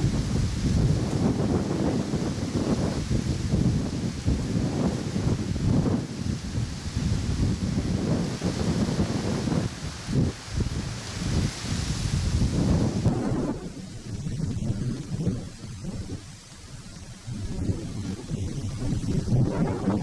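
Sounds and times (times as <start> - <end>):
gusty wind on microphone: 0.0 - 20.0
high steady hiss: 0.0 - 20.0.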